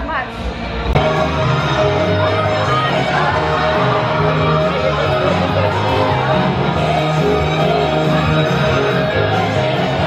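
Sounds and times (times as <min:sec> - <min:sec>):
pop music over loudspeakers: 0:00.0 - 0:10.0.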